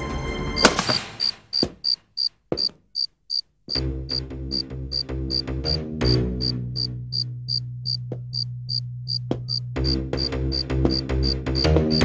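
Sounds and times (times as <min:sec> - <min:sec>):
cricket chirping: 0:00.6 - 0:05.8, 0:06.4 - 0:12.0.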